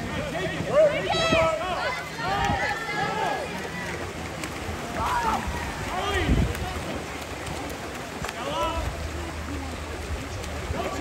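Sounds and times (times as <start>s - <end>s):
swimmers splashing: 0.0s - 11.0s
voices shouting: 0.3s - 4.2s, 4.8s - 7.1s.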